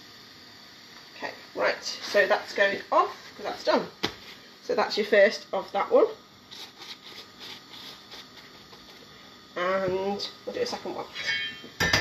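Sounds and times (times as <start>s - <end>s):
low kitchen background: 0.0s - 12.0s
pastry brush brushing: 6.5s - 9.0s.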